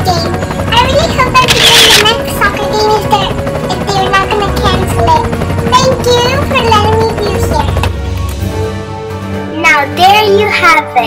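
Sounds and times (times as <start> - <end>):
high-pitched character voice: 1.4 - 2.1.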